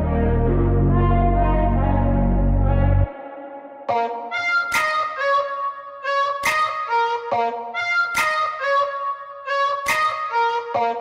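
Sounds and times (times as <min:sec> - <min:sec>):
loud low chord: 0:00.0 - 0:03.1.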